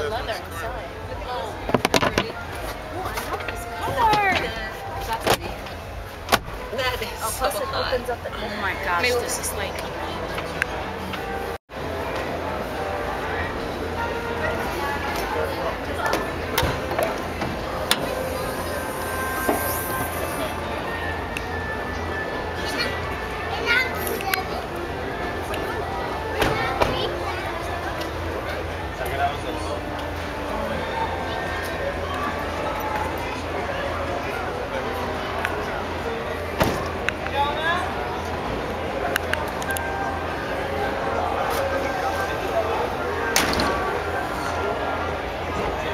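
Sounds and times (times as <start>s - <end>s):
indistinct voices: 0.0s - 45.9s.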